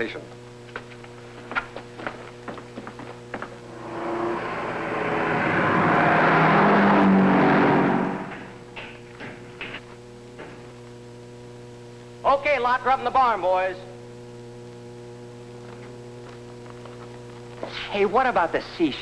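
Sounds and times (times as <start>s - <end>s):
steady hum: 0.0s - 19.0s
car driving past: 3.6s - 8.8s.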